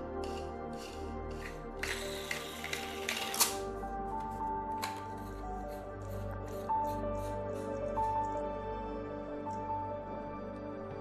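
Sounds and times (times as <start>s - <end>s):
background music: 0.0s - 11.0s
plastic parts clicking together: 1.8s - 3.6s, 4.7s - 5.1s.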